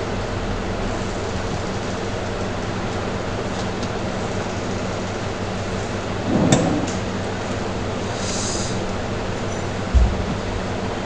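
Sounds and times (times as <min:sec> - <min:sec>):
low electrical hum: 0:00.0 - 0:11.0
soft thump: 0:09.9 - 0:10.7.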